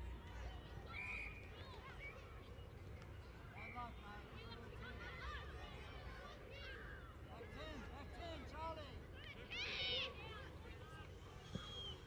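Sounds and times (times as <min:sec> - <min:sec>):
children and adults chattering: 0:00.5 - 0:11.4.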